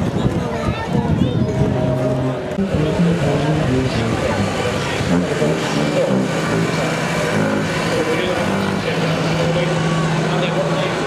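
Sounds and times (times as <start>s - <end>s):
background voices: 0.9s - 11.0s
truck engine hum: 1.4s - 11.0s
tractor engine: 1.6s - 11.0s.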